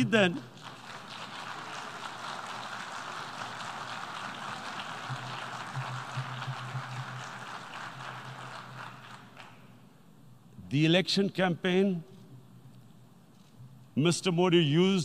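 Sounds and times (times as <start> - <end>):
audience applause: 0.0 - 9.7.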